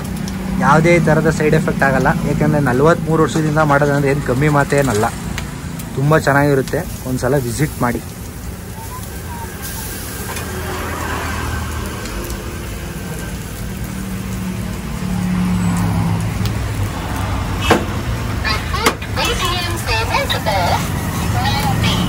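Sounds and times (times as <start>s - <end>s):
gas burner rumble: 0.0s - 22.0s
vehicle engine hum: 0.0s - 22.0s.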